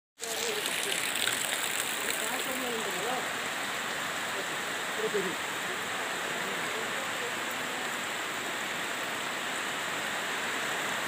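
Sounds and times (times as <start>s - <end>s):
water rushing hiss: 0.2s - 11.0s.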